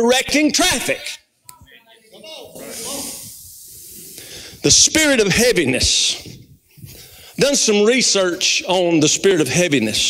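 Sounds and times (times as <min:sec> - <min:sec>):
high-pitched hiss: 0:02.1 - 0:08.6.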